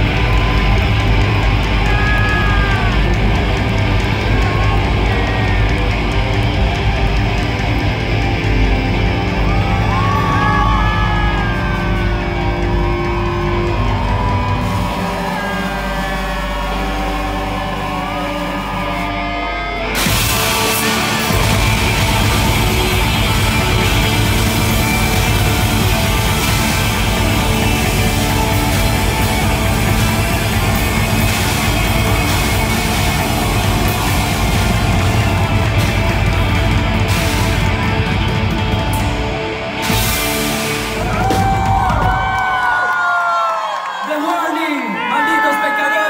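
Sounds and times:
live rock band playing loud: 0.0s - 42.4s
distorted electric guitars: 0.0s - 42.7s
drums: 0.0s - 44.0s.

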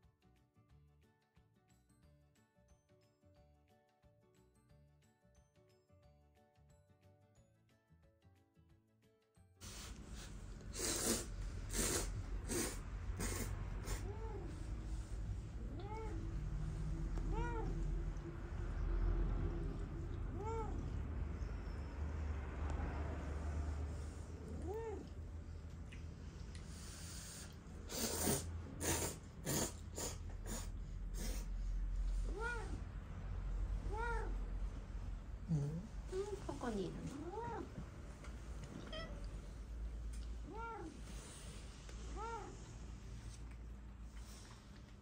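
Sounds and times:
low steady rumble: 11.4s - 26.9s, 30.7s - 45.0s
cat meowing: 13.2s - 14.9s, 15.6s - 19.0s, 19.6s - 21.8s, 24.4s - 25.2s, 32.1s - 32.9s, 33.8s - 34.5s, 37.1s - 37.8s, 38.7s - 39.6s, 40.4s - 41.4s.

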